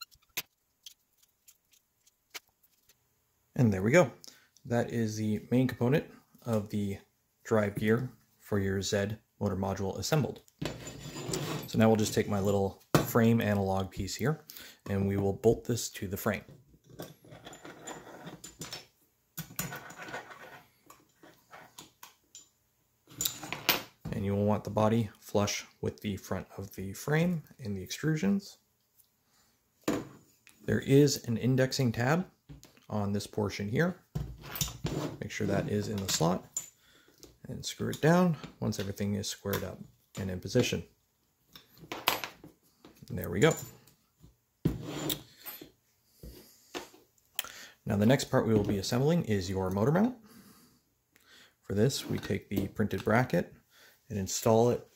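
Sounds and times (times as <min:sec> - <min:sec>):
hands handling plastic and metal parts: 0:00.0 - 0:03.0.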